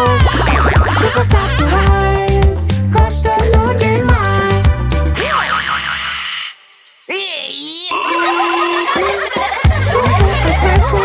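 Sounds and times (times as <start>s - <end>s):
backing music: 0.0s - 5.5s, 7.9s - 11.0s
warbling cartoon boing tone: 0.2s - 1.1s, 5.2s - 6.4s, 7.9s - 9.4s.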